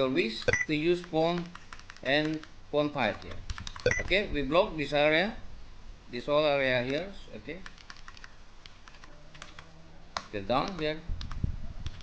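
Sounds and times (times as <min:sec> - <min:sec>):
keyboard keys clicking: 0:03.1 - 0:04.1, 0:07.6 - 0:12.0.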